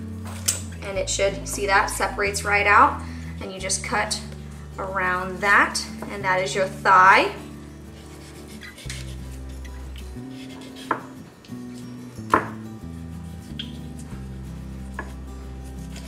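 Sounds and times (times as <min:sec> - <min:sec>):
soft background music: 0:00.0 - 0:16.0.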